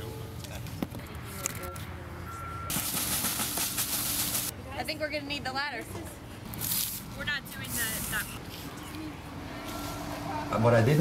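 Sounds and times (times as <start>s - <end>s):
street traffic rumble: 0.0s - 11.0s
short beeps: 1.6s - 2.7s.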